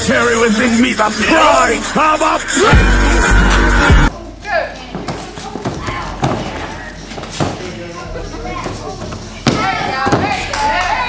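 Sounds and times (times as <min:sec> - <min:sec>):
thuds of feet and strikes on mat: 0:05.0 - 0:07.8, 0:09.4 - 0:10.4.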